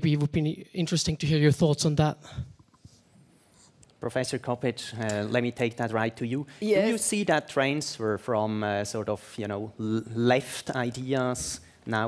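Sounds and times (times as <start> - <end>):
man speaking: 4.0 - 12.0.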